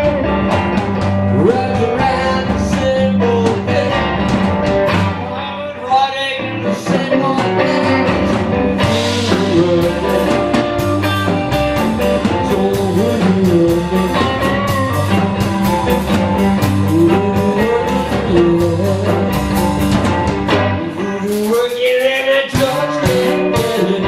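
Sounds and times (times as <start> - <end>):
bass guitar: 0.0 - 24.0
distorted electric guitars: 0.0 - 24.0
drum kit: 0.0 - 24.0
man singing: 1.2 - 4.4, 5.1 - 19.9, 20.5 - 24.0.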